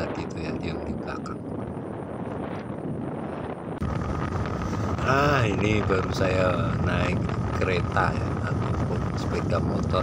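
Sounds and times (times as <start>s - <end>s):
motorcycle engine rumble: 0.0s - 10.0s
wind and road noise: 0.0s - 10.0s.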